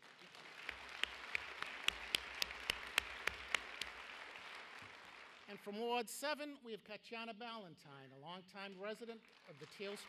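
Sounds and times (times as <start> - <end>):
sharp individual claps: 0.0 - 5.6
audience applauding: 0.0 - 5.8, 8.9 - 10.0.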